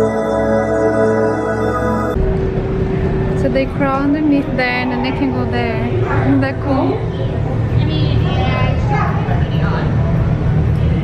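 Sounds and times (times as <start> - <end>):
background music: 0.0 - 4.6
indistinct voices: 0.0 - 11.0
steady hum: 0.0 - 11.0.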